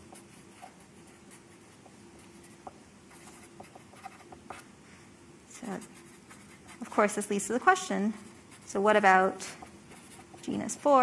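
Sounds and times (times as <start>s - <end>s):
marker pen scratching on paper: 0.0s - 4.7s, 5.6s - 11.0s.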